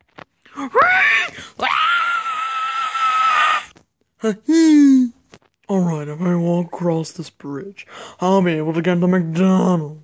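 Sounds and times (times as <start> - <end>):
person screaming: 0.6 - 3.7.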